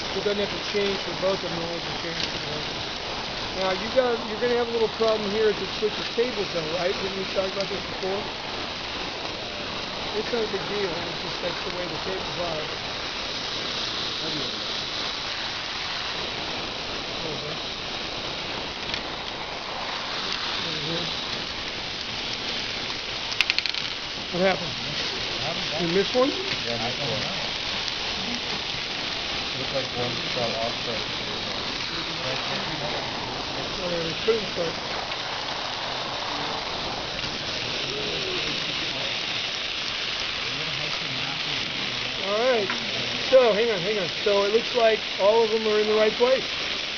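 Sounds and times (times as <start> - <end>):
faint clicks: 23.3 - 24.0.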